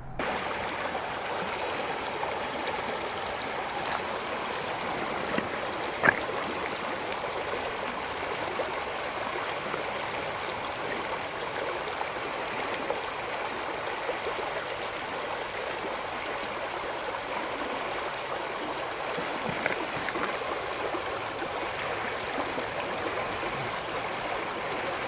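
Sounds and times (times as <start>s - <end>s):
river water burbling over rocks: 0.0s - 25.0s.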